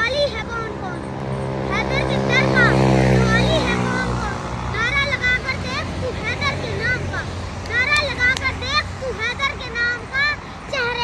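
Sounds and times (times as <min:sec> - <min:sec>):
vehicle engine humming: 0:00.0 - 0:11.0
boy reciting: 0:01.7 - 0:11.0.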